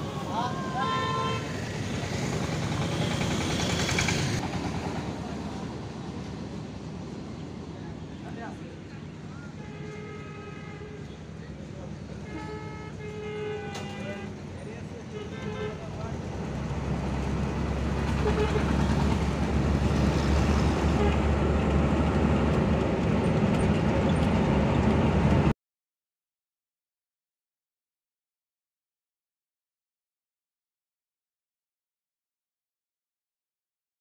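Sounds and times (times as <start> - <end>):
vehicle horns honking: 0.0 - 1.6, 9.4 - 11.3, 12.2 - 14.4, 15.1 - 16.1, 18.1 - 19.0, 20.9 - 21.3
engine and road noise rumble: 0.0 - 25.5
roadside traffic: 0.0 - 25.6.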